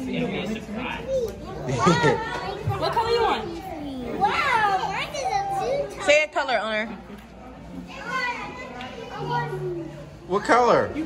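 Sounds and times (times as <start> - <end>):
young children squealing and babbling: 3.4 - 6.0.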